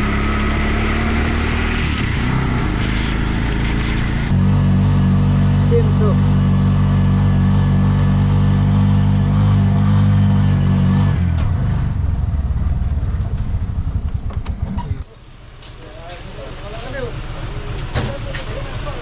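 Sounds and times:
vehicle engine running: 0.0 - 19.0.

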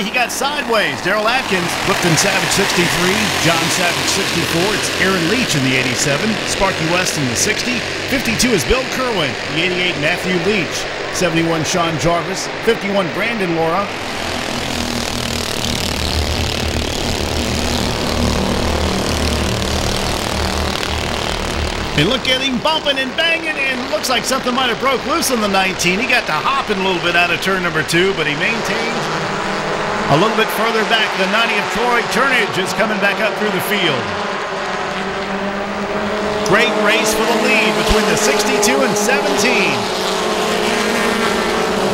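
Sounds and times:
race car engines: 0.0 - 41.9.

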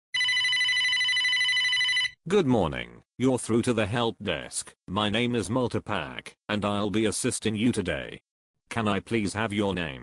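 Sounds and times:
telephone ringing: 0.1 - 2.2.

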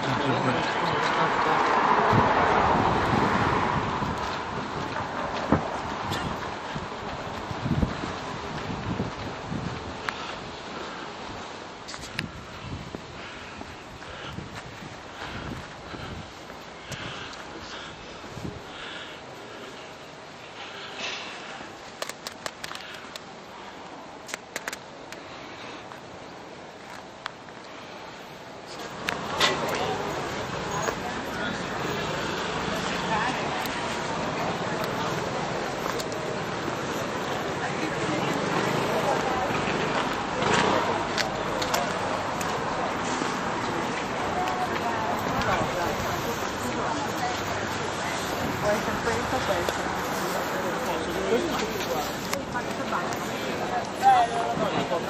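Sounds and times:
people talking: 0.0 - 2.4, 28.8 - 55.0
street background noise: 0.0 - 55.0
urban traffic noise: 0.0 - 55.0
wind on microphone: 1.7 - 10.6, 11.3 - 17.4.

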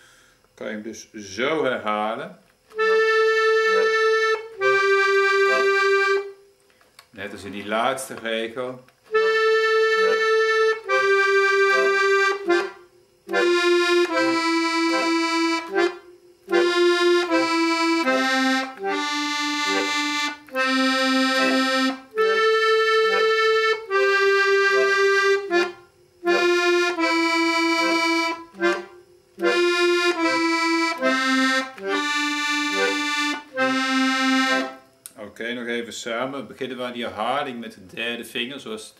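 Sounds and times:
piano accordion playing slow tune: 2.8 - 6.4, 9.1 - 34.8.

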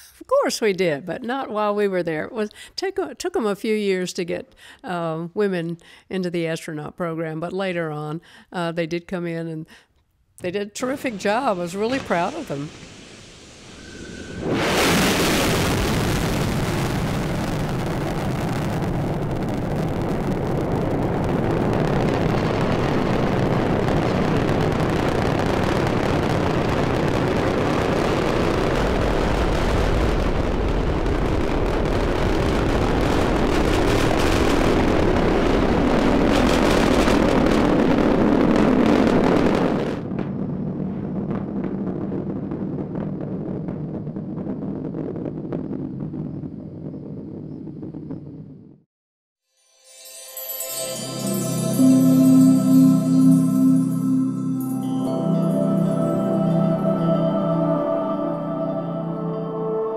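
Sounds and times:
rocket engines roaring: 10.8 - 48.6.

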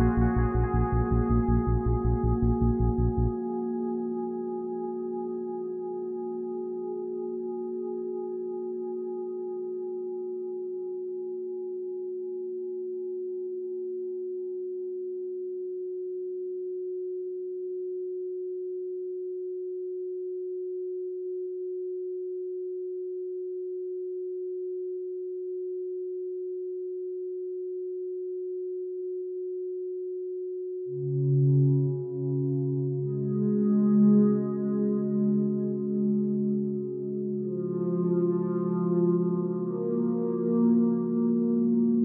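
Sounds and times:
steady pure electronic tone: 0.0 - 11.9, 30.9 - 42.0.

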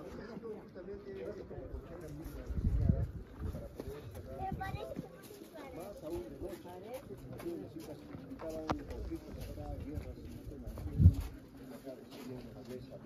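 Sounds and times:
people chattering: 0.0 - 13.0.

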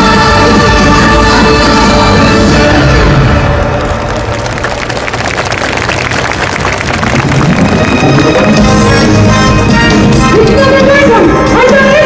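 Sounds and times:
show music: 0.0 - 12.0
audience applauding: 2.5 - 9.2.

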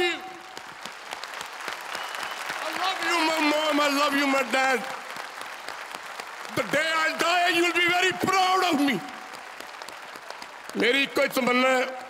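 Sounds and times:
audience applause: 0.0 - 12.0.

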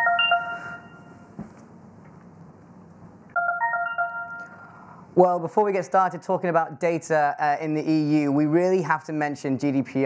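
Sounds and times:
short electronic chime: 0.0 - 1.3.

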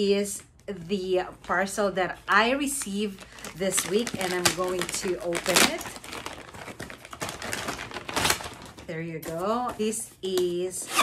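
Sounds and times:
paper packaging crinkling: 2.6 - 9.5.

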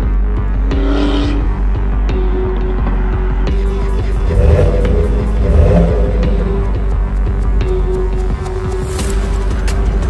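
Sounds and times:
background music: 0.0 - 10.0
car engine revving: 0.3 - 7.8.

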